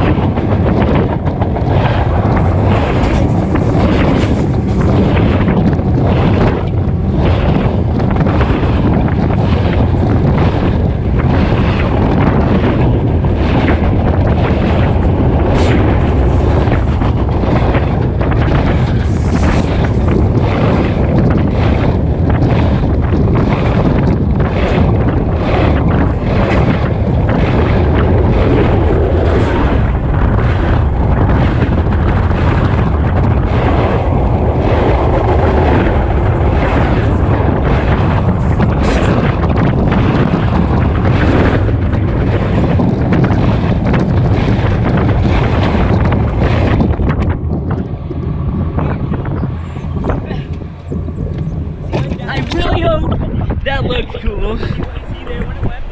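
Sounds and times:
freight train cars rumbling: 0.0 - 55.9.

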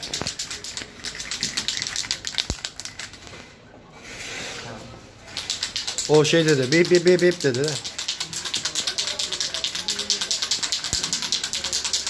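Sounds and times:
spray can ball rattling: 0.0 - 3.4, 5.2 - 12.0
spray can hissing: 5.3 - 12.0.

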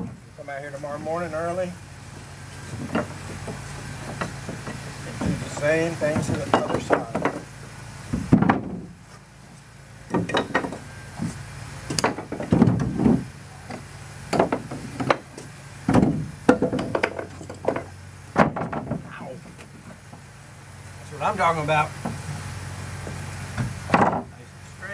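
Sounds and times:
wooden boards knocking and clattering: 2.2 - 7.5, 8.1 - 9.0, 10.1 - 11.3, 11.9 - 20.3, 22.0 - 22.4, 23.0 - 24.4.

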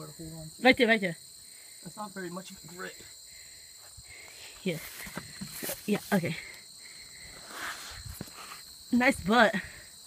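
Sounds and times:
high insect drone: 0.0 - 10.0.

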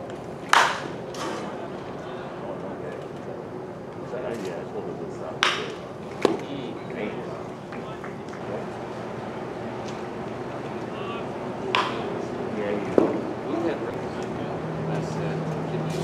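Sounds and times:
players chattering: 0.0 - 16.0
baseball smacking into mitt: 0.5 - 0.9, 11.7 - 12.0.

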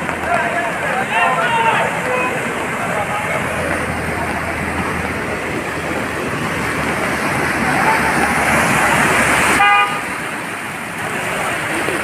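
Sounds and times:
floodwater rushing and splashing: 0.0 - 12.0
car horn toot: 9.5 - 10.1.

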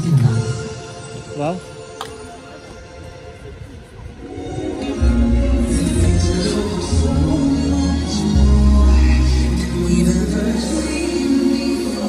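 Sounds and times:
music over loudspeakers: 0.0 - 12.0.

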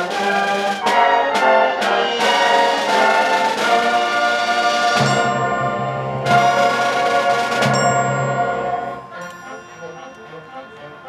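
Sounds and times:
accented beats: 0.0 - 11.0
concert band brass chords: 0.0 - 11.0.

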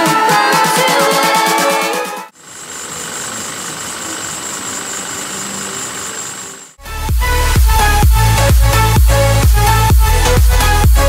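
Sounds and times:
car engine idling: 2.3 - 11.0
high-pitched whine: 2.3 - 11.0.

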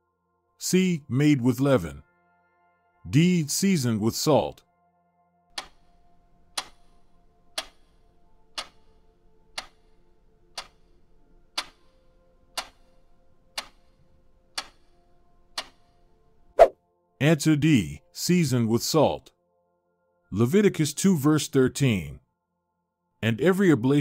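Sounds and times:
faint musical pad: 0.0 - 24.0
countdown timer ticking: 5.5 - 10.0, 10.6 - 10.9, 11.6 - 12.0, 12.6 - 13.0, 13.6 - 14.0, 14.6 - 14.9, 15.6 - 15.9.

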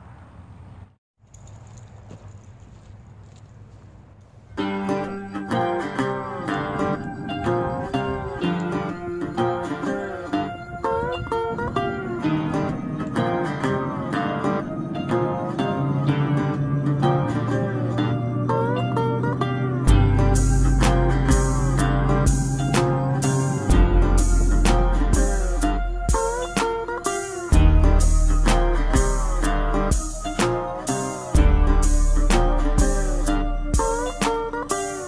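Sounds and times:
outdoor background sound: 0.0 - 35.0
plucked acoustic guitar music: 4.6 - 35.0.

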